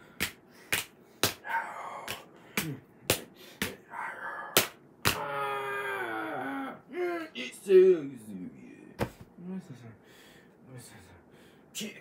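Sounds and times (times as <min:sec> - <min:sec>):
faint vocal sounds: 0:01.4 - 0:02.9, 0:03.8 - 0:07.4
books slapping together: 0:09.0 - 0:09.3.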